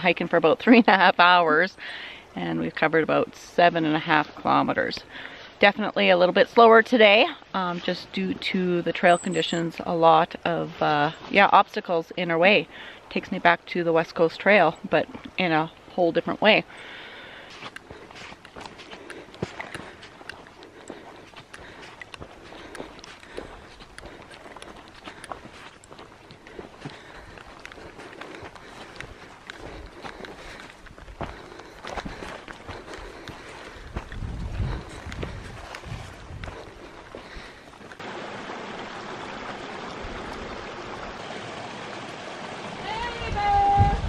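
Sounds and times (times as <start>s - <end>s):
footsteps on dirt trail: 15.0s - 38.1s
plants brushing against legs: 17.4s - 38.0s.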